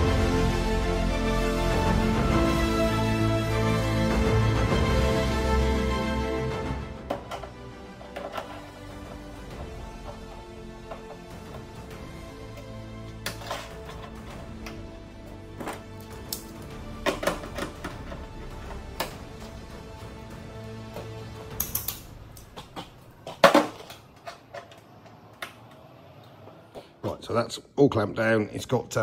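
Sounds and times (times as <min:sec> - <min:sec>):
background music: 0:00.0 - 0:24.6.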